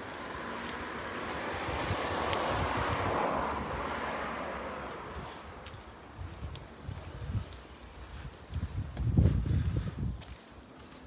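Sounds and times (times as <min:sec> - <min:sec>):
vehicle passing by: 0:00.0 - 0:07.4.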